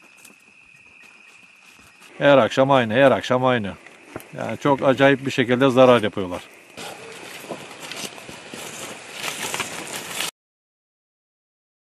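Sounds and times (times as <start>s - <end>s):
crickets trilling: 0.0s - 10.3s.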